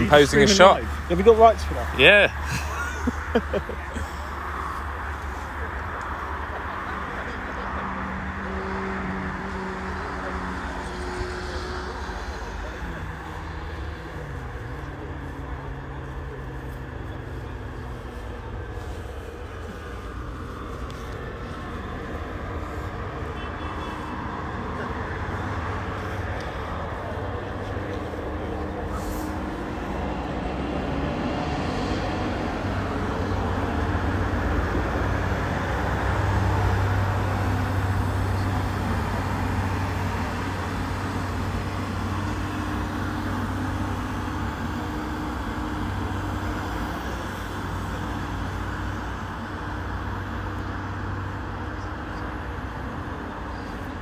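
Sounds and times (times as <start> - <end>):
low engine rumble: 0.0 - 54.0.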